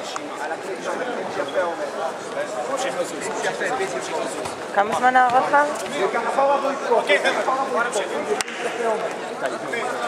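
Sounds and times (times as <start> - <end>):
men talking: 0.0 - 4.7, 5.8 - 10.0.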